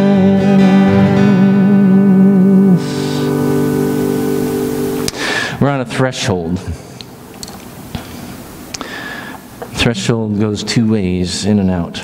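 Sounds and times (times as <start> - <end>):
acoustic guitar chord ringing: 0.0 - 5.6.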